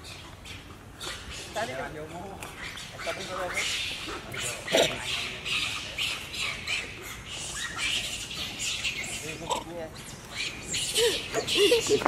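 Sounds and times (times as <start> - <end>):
high-pitched animal chirping: 1.0 - 12.0.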